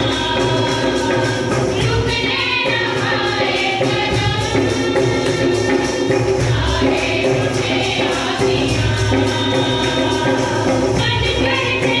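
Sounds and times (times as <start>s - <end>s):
group singing a hymn: 0.0s - 12.0s
instrumental accompaniment with beat: 0.0s - 12.0s.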